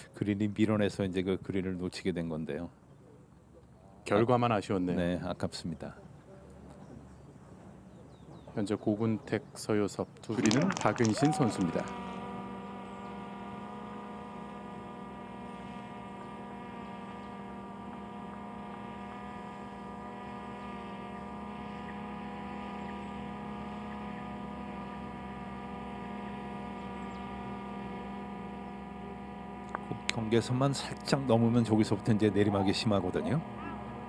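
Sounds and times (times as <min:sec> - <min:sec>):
steady electrical hum: 0:00.0 - 0:34.0.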